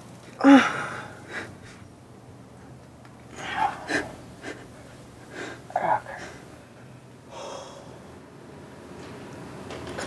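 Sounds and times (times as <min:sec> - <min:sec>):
man breathing hard: 0:00.4 - 0:01.8, 0:03.3 - 0:06.5, 0:07.3 - 0:08.2.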